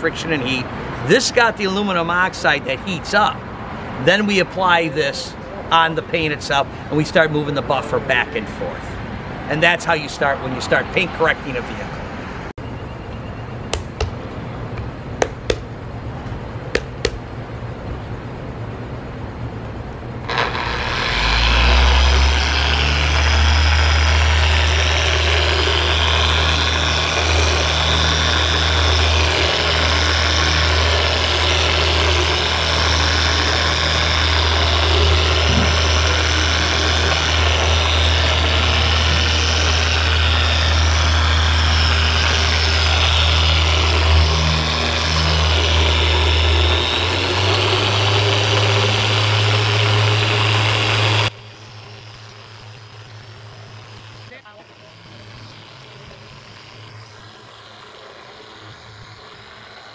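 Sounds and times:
rotary polisher motor hum: 20.2s - 59.9s.

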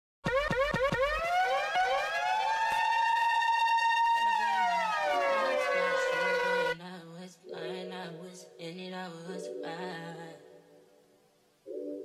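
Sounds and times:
siren sound effect: 0.2s - 6.8s.

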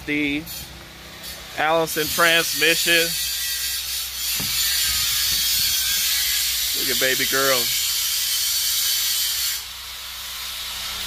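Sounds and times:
short knock: 4.4s - 4.7s.

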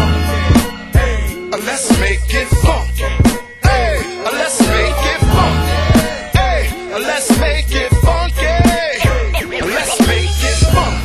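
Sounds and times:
rapping over a drum beat: 1.5s - 2.9s, 3.6s - 11.0s.

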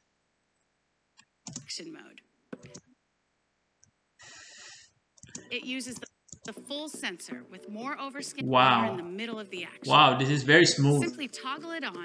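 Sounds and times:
computer mouse click: 1.5s - 1.7s.

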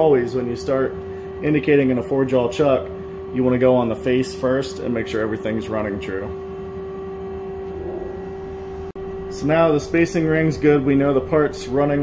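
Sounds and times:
lathe machine hum: 0.0s - 12.0s.

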